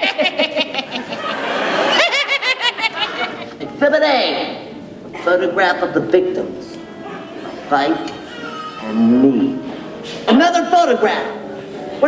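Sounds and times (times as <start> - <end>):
rapid snickering laugh: 0.0 - 3.5.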